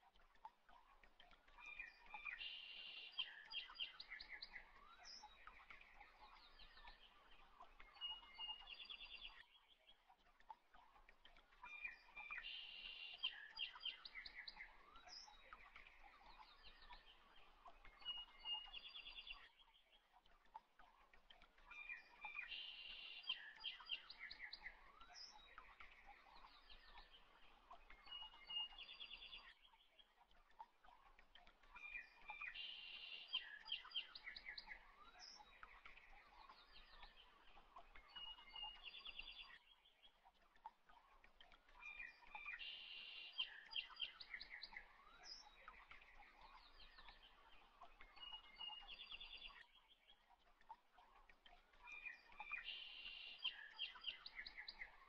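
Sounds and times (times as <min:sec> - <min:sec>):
birds chirping and trilling: 0:11.6 - 0:55.0.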